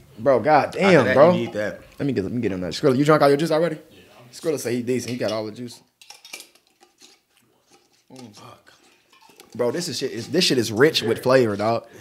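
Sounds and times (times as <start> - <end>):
small containers clinking: 4.4 - 11.8.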